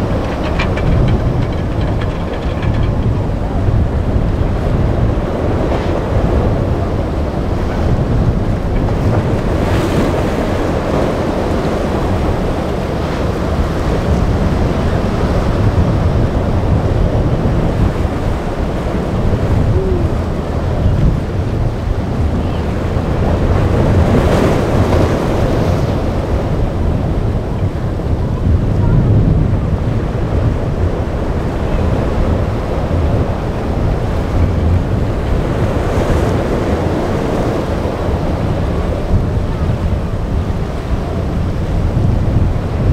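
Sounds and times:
waves breaking: 0.0 - 42.9
wind buffeting microphone: 0.0 - 42.9.

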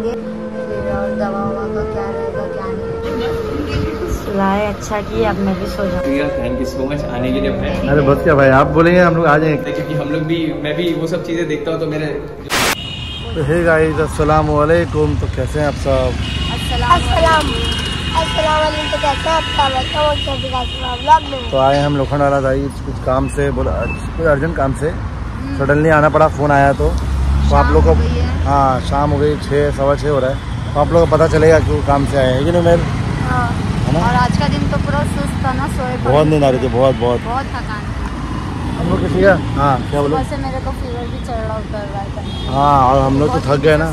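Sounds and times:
steady high-pitched tone: 0.0 - 12.8
people's voices: 0.0 - 30.2, 30.9 - 43.9
city road traffic rumbling: 0.0 - 43.9.

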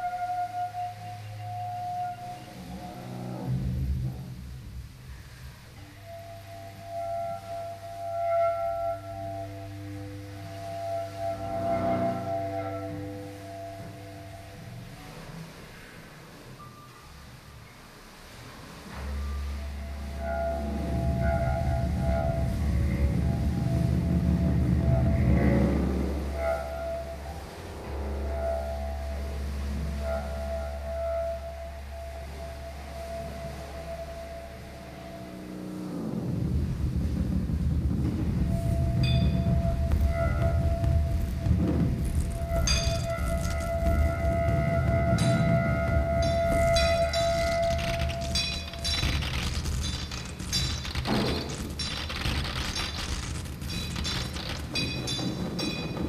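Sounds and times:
low hum with sustained tones: 0.0 - 56.0
low rumble: 18.7 - 31.0, 34.6 - 56.0
metallic clinks: 46.2 - 56.0.

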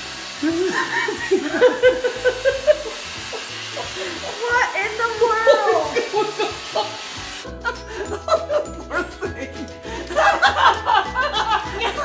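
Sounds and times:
robot vacuum humming: 0.0 - 7.5
background music: 0.0 - 12.0
people exclaiming: 3.8 - 7.0.

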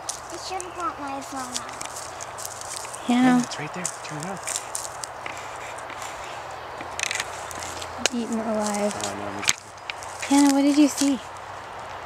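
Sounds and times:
footsteps rustling through weeds: 0.0 - 12.0.

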